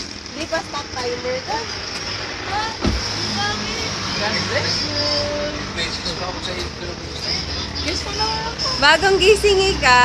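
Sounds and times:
thump: 2.8 - 3.1.

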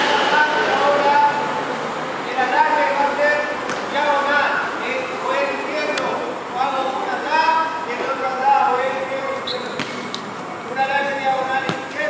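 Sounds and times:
shoe squeak: 9.2 - 10.2
ball striking concrete: 9.7 - 10.2, 11.6 - 12.0.

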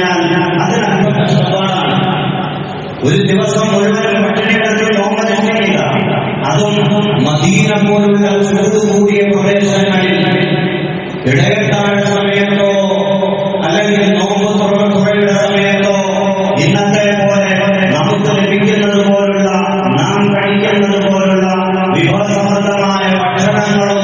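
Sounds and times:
man chanting: 0.0 - 2.3, 3.0 - 24.0.

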